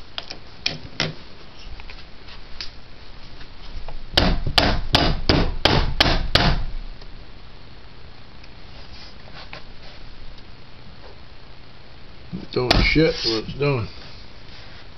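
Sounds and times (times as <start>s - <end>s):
sharp knocks: 4.2s - 6.7s.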